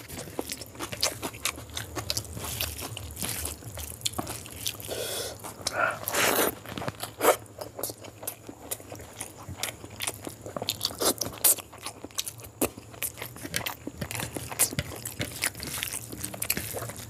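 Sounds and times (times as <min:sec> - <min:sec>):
hand squishing sticky rice: 0:00.0 - 0:07.2
wet chewing and mouth smacks: 0:00.0 - 0:17.0.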